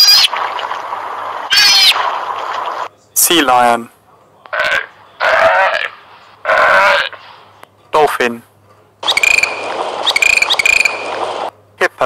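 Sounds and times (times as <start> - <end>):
sea lion barking: 4.5 - 7.2.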